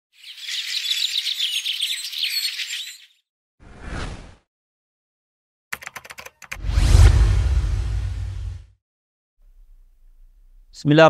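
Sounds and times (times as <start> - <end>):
small birds twittering: 0.2 - 3.2
whoosh with deep rumble: 6.6 - 8.7.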